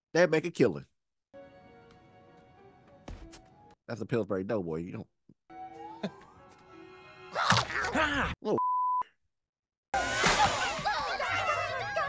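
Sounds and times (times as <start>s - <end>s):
high-pitched censor bleep: 8.6s - 9.1s.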